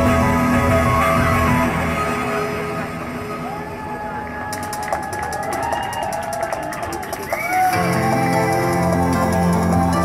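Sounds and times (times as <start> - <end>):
electronic music with sliding tones: 0.0 - 10.0
fast high ticking rhythm: 4.5 - 10.0.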